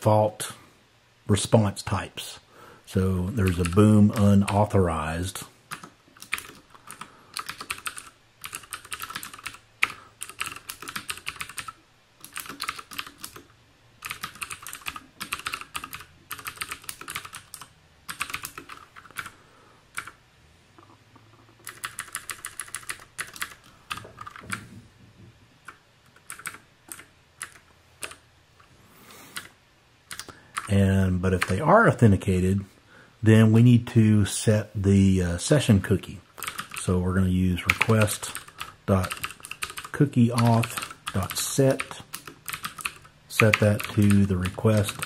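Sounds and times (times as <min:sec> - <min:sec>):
typing on computer keyboard: 0:03.4 - 0:04.7, 0:05.7 - 0:19.3, 0:19.9 - 0:20.2, 0:21.5 - 0:24.6, 0:25.7 - 0:28.2, 0:30.1 - 0:30.7, 0:36.4 - 0:36.9, 0:37.6 - 0:45.0.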